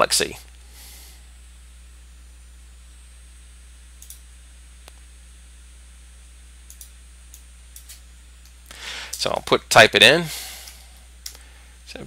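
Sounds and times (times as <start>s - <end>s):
low electrical hum: 0.0s - 12.0s
computer mouse clicks: 4.0s - 4.2s, 6.7s - 8.0s.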